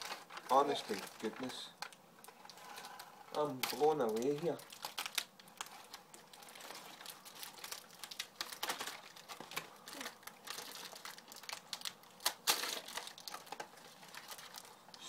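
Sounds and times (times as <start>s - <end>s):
packaging crinkling: 0.0s - 15.0s.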